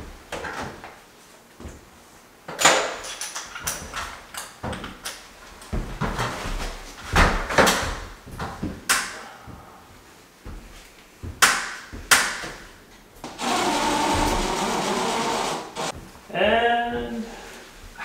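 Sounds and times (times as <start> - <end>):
cordless drill running: 13.3 - 15.9
person speaking: 16.3 - 18.0.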